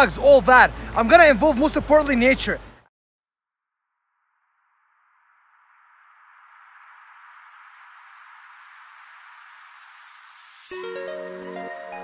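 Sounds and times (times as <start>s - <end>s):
white-noise riser sweep: 4.3s - 10.8s.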